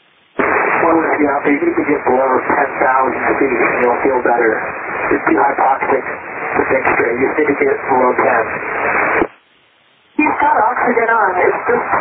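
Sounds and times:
faint radio hiss: 0.0s - 12.0s
voice over aviation radio: 0.4s - 8.6s.

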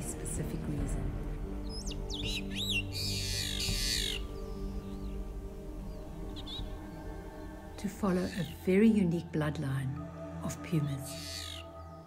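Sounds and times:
background music: 0.0s - 12.0s
meadowlark singing: 0.0s - 12.0s.

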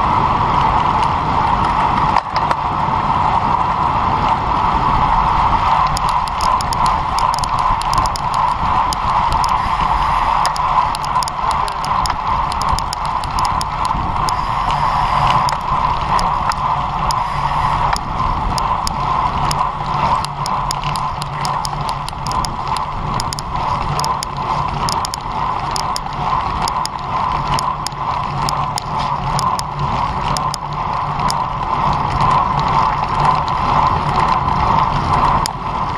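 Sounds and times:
bike tyres on tarmac: 0.0s - 35.9s
wind noise: 0.0s - 35.9s
quick irregular clicks: 5.7s - 35.9s.

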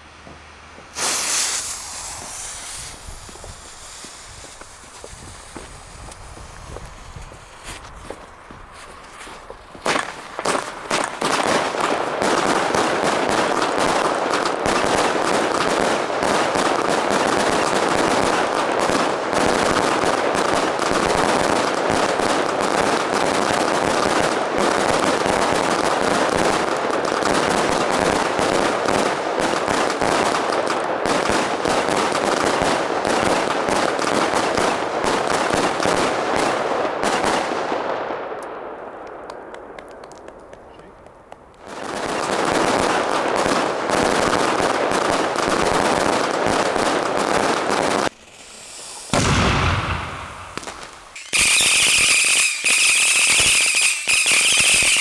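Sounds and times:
fireworks launching and crackling: 0.7s - 55.0s.

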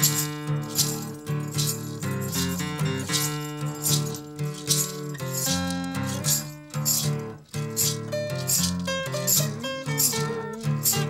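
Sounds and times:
hand shaker beat: 0.0s - 11.0s
strummed acoustic guitars: 0.0s - 11.0s.

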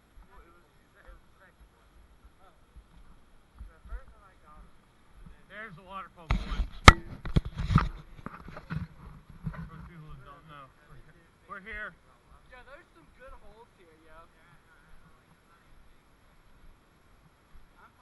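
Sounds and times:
faint distant voices: 0.0s - 18.0s.

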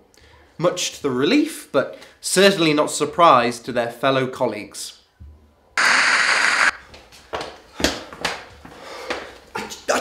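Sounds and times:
burst of static hiss: 5.8s - 6.8s.

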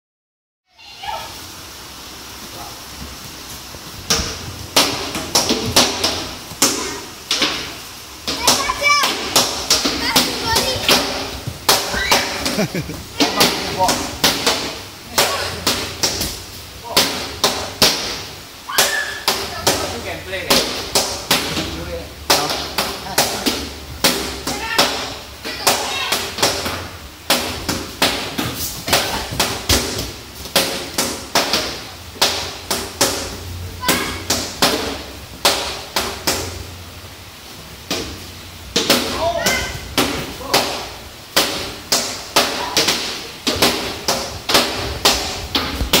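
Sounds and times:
children's voices: 0.7s - 1.4s, 8.3s - 12.4s, 18.7s - 20.1s, 24.5s - 26.2s, 33.7s - 34.3s.

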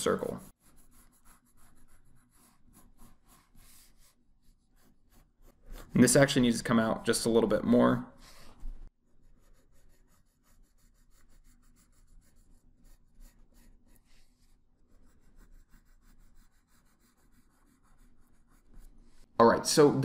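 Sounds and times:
pencil scratching on paper: 0.0s - 7.4s, 8.2s - 19.3s.

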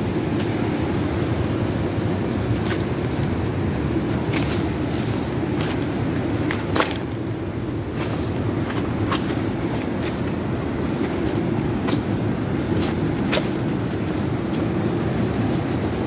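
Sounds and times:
ocean surf on rocky shore: 0.0s - 16.0s.

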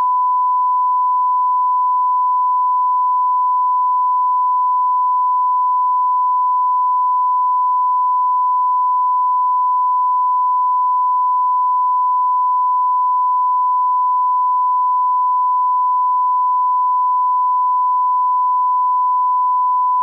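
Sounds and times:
steady pure tone beep: 0.0s - 20.0s.

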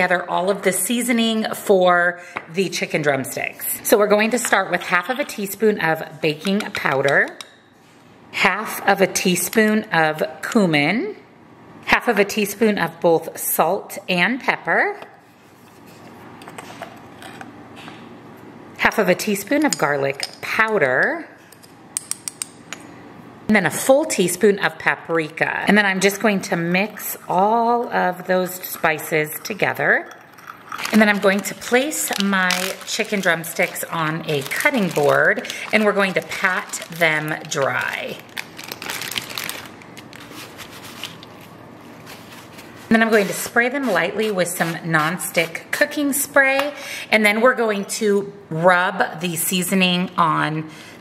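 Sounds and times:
plastic wrap crinkling: 30.7s - 45.6s
paper towel rustling: 30.8s - 45.5s
spoon scraping ground pepper: 42.0s - 45.8s.

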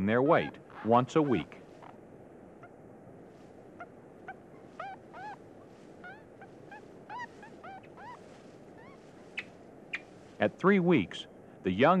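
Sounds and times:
marmot pups squeaking: 0.1s - 2.0s, 3.8s - 5.4s, 6.0s - 10.1s.

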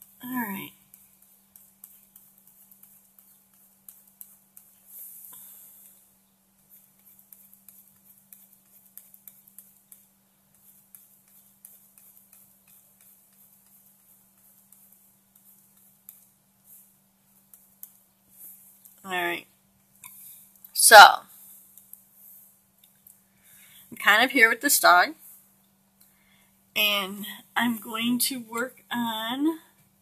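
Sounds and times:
stylus tapping on drawing tablet: 0.8s - 4.8s, 6.6s - 18.0s.

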